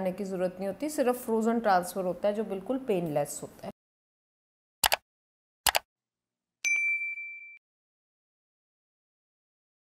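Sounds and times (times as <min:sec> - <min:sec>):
bright notification ding: 0:06.6 - 0:07.6.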